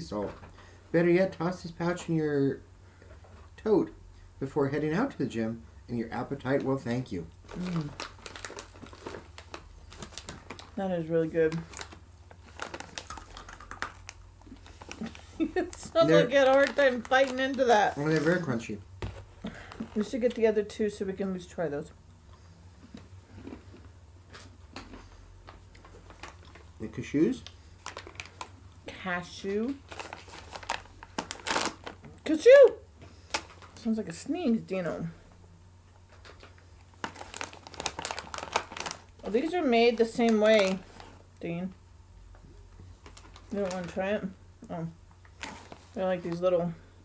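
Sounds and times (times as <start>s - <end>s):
snack pouch crinkling: 7.4s - 10.8s, 11.5s - 18.4s, 25.8s - 26.7s, 27.4s - 28.6s, 29.8s - 32.0s, 36.1s - 41.2s.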